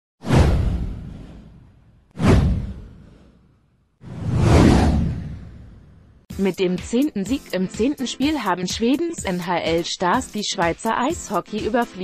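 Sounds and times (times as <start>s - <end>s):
whoosh with deep rumble: 0.2s - 6.3s.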